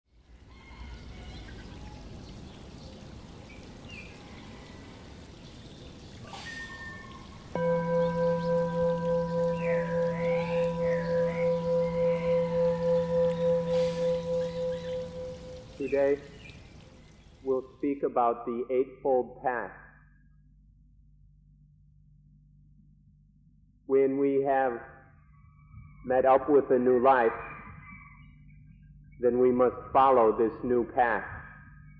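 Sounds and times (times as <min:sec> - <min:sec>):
singing bowl ringing: 0:06.6 - 0:16.4
man speaking: 0:15.8 - 0:16.2, 0:17.5 - 0:19.8, 0:23.9 - 0:24.9, 0:26.1 - 0:27.4, 0:29.2 - 0:31.4.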